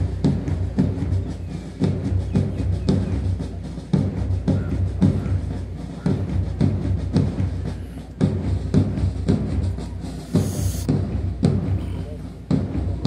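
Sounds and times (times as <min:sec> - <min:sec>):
bass drum beating: 0:00.0 - 0:13.0
marching band music: 0:00.0 - 0:13.0.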